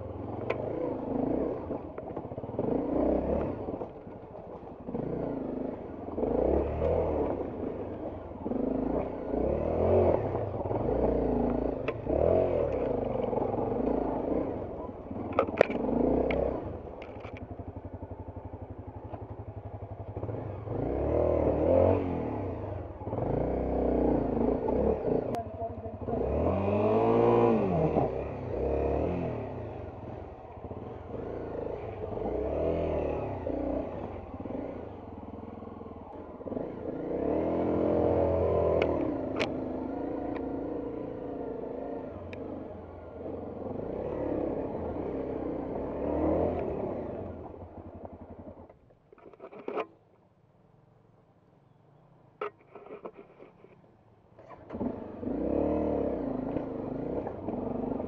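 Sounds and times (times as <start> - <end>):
motorcycle engine revving: 0.0 - 49.9, 54.4 - 58.0.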